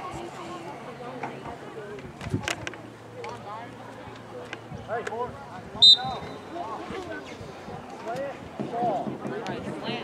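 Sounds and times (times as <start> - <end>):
background chatter of voices: 0.0 - 10.0
referee's whistle blast: 5.8 - 6.4.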